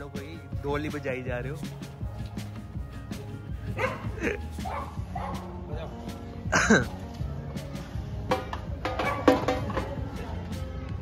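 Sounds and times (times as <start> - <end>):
dog yelping bark: 3.8 - 5.5, 9.0 - 9.3
drums beating: 8.2 - 10.2.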